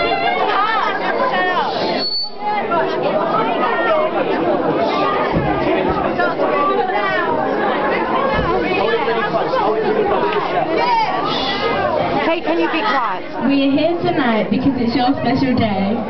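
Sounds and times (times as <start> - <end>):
many voices chattering: 0.0 - 16.0.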